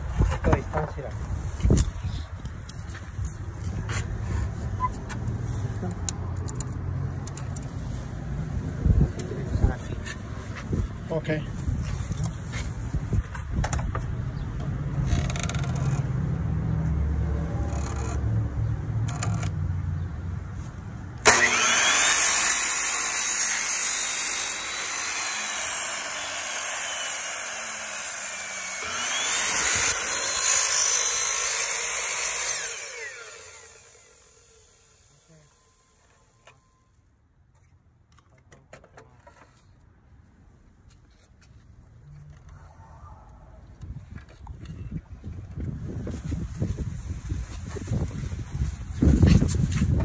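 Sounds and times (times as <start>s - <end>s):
miter saw cutting foam: 21.2s - 36.3s.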